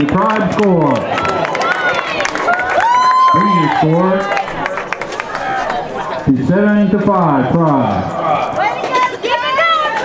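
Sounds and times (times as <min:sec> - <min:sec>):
murmur of voices: 0:00.0 - 0:10.0
people shouting: 0:08.1 - 0:10.0.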